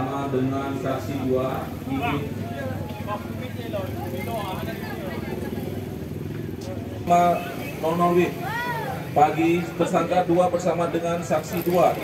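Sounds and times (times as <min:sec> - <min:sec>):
crowd chatter: 0:00.0 - 0:12.0
motorcycle engine running: 0:00.2 - 0:09.6, 0:11.2 - 0:12.0.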